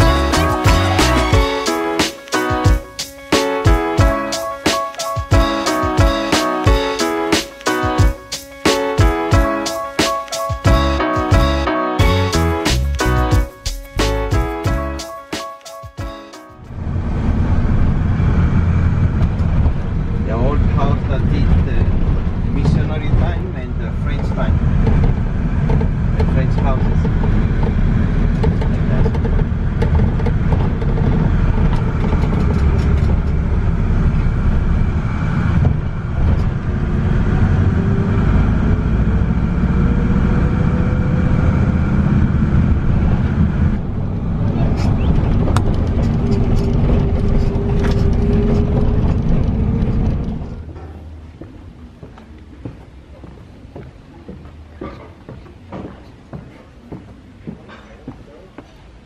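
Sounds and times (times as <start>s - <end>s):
engine and road rumble: 0.0s - 15.3s, 16.0s - 59.0s
engine whine rising in pitch: 16.6s - 50.7s.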